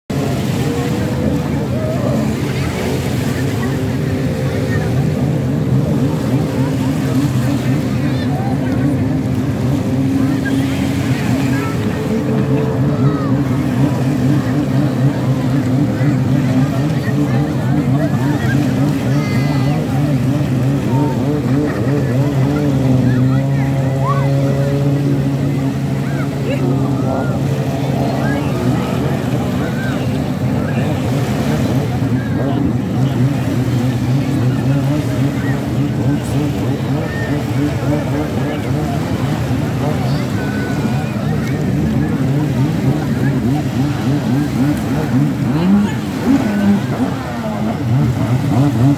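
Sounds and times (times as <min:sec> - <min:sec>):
motorboat engine drone: 0:00.0 - 0:48.9
people calling out: 0:05.8 - 0:33.3, 0:34.5 - 0:48.9.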